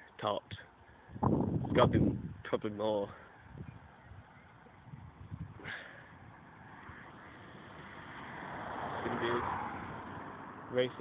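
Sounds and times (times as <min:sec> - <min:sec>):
road vehicle approaching: 0:03.3 - 0:11.0.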